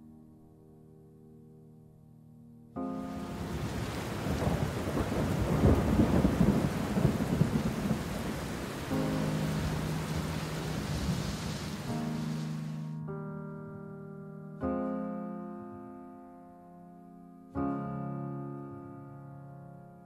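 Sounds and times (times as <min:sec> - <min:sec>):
heavy rain: 0:03.1 - 0:12.9
thunder rumble: 0:03.2 - 0:12.8.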